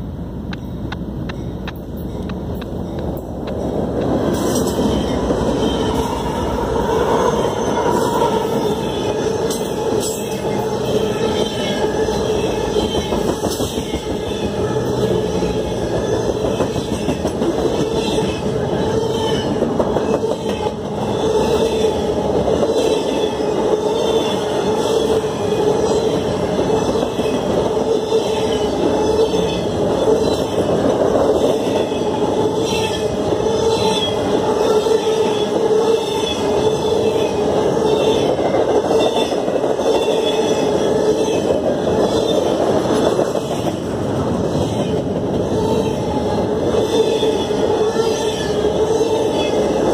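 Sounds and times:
freight train rolling past: 0.0 - 49.9
steel wheels on rail: 0.0 - 49.9.

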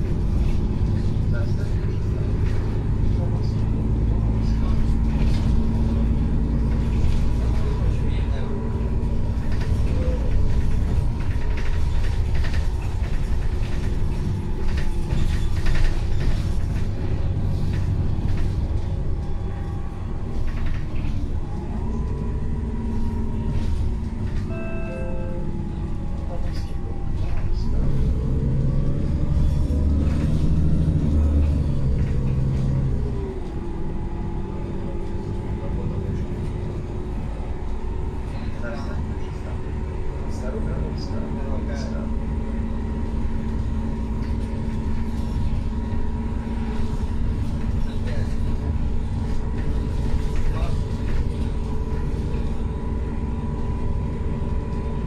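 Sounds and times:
bus engine running: 0.0 - 55.0
road rumble: 0.0 - 55.0
short tone: 24.4 - 25.6.

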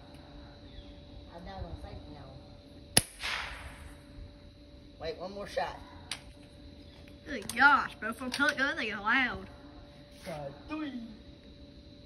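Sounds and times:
air rifle firing crack: 3.0 - 4.0.

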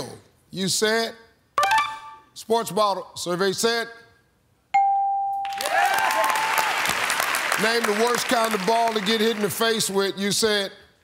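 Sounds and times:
bell-like ding: 4.8 - 5.5
audience applause and cheering: 5.5 - 9.8.

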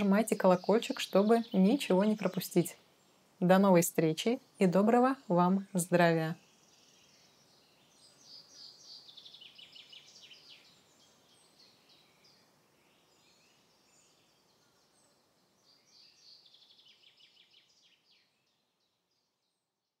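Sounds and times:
faint birdsong trills: 0.0 - 20.0.

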